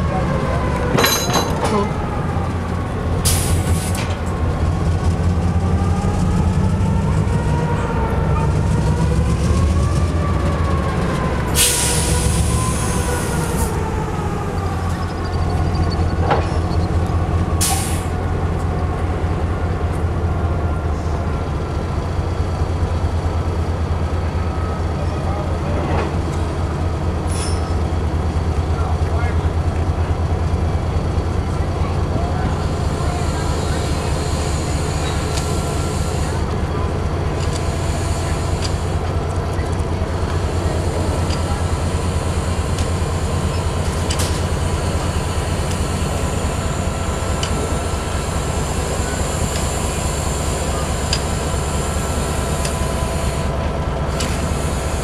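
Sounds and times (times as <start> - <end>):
locomotive engine idling: 27.8 - 55.0.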